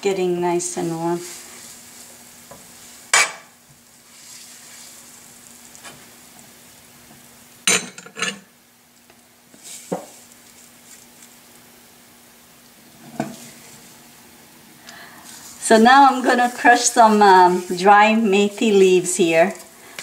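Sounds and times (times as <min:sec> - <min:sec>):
butter sizzling in a pan: 0:00.2 - 0:07.7, 0:08.4 - 0:20.0.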